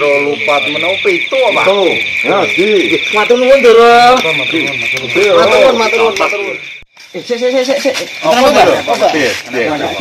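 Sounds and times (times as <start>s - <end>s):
loud voices: 0.0s - 10.0s
night chorus of calling animals: 0.0s - 10.0s.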